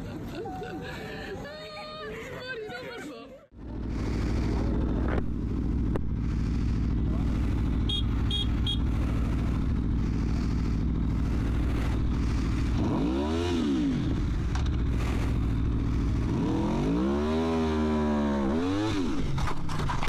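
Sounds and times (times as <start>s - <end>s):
motorcycle engine idling: 3.5s - 16.9s
motorcycle engine revving: 3.5s - 20.0s.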